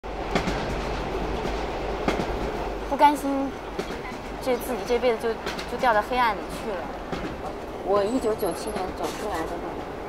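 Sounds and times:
train wheels clicking: 0.1s - 9.8s
train rumble and hiss: 0.1s - 10.0s.

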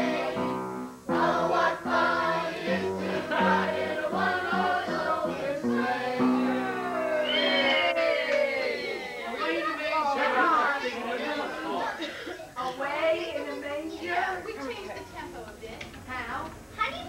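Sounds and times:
voices singing together: 0.0s - 12.6s.

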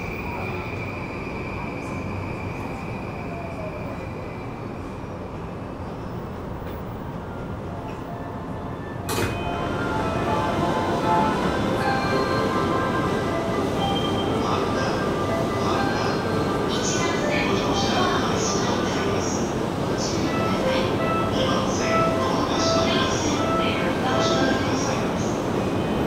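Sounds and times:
train running noise: 0.0s - 26.0s.

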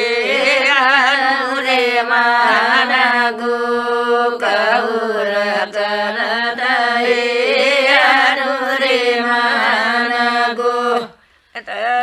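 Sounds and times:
women singing a folk song: 0.0s - 12.0s.

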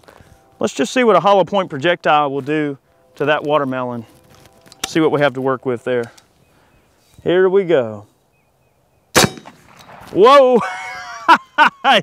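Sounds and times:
air rifle shot: 9.2s - 10.2s.

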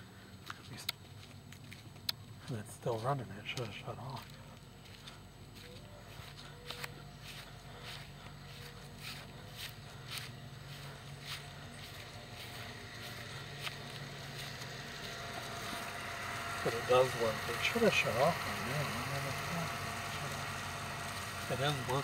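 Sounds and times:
pool filter pump humming: 0.0s - 22.0s
footsteps on grass: 0.1s - 22.0s.

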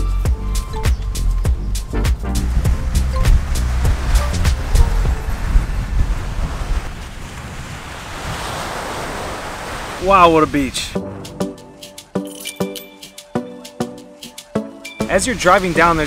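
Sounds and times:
music with a beat: 0.0s - 5.1s, 11.0s - 15.2s
wind on microphone: 0.6s - 10.0s
ocean surf: 2.3s - 12.1s, 13.1s - 16.0s.

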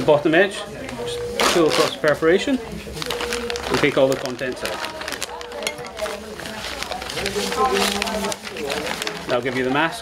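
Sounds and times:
plastic packaging crinkling: 0.4s - 10.0s.

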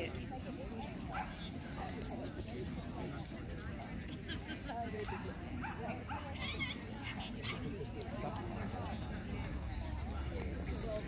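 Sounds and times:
murmur of background chatter: 0.0s - 11.0s.

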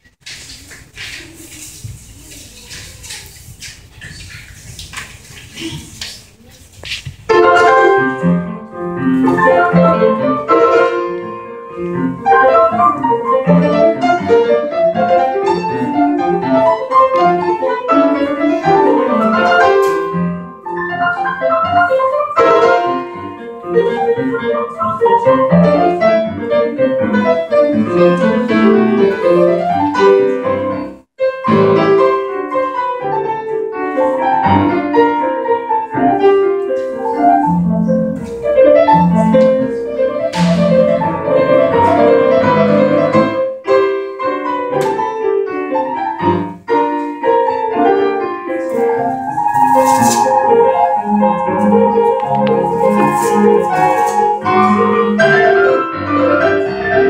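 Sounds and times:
grand piano playing quick notes: 7.2s - 57.0s.

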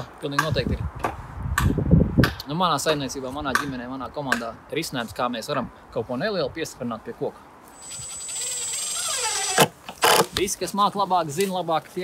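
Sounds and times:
cordless drill whining: 7.8s - 10.2s.

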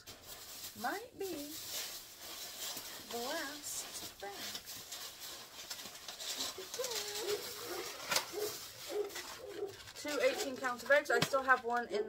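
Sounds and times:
grocery bags rustling: 0.0s - 12.0s.

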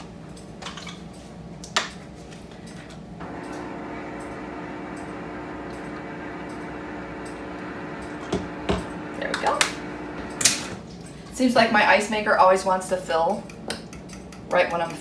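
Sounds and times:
ice maker humming: 3.2s - 10.8s.

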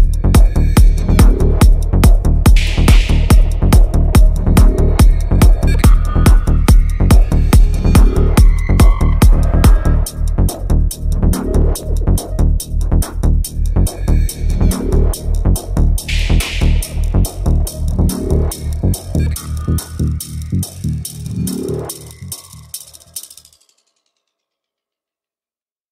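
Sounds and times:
psytrance music: 0.0s - 23.6s
repeating echo clicks: 2.4s - 10.1s, 16.0s - 23.5s
electronic hit: 2.5s - 10.0s, 16.0s - 19.7s.

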